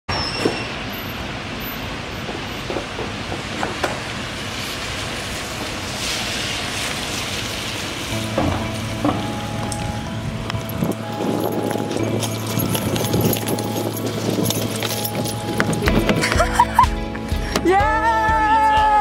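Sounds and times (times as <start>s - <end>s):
car tyres on wet road: 0.1s - 17.7s
rain hiss on wet street: 0.5s - 17.5s.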